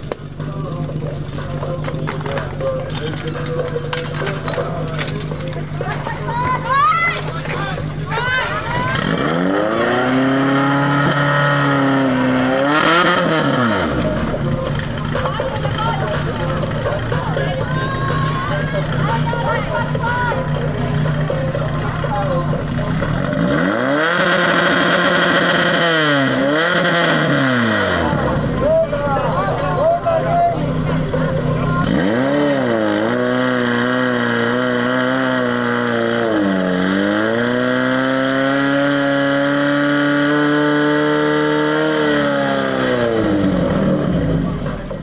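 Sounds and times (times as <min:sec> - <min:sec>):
people shouting: 0:05.8 - 0:10.3, 0:16.9 - 0:20.7, 0:28.2 - 0:32.0.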